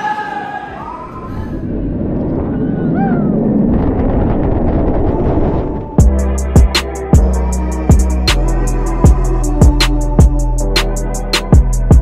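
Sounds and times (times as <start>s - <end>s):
roller coaster rumbling on track: 0.6s - 6.0s.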